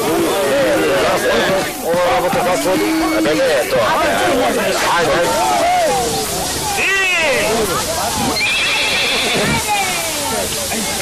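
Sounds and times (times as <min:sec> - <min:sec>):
horse whinnying: 0:08.4 - 0:09.6.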